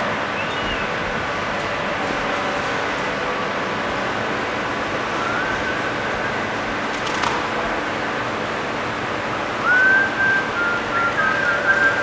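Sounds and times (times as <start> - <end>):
person whistling: 9.6 - 12.0.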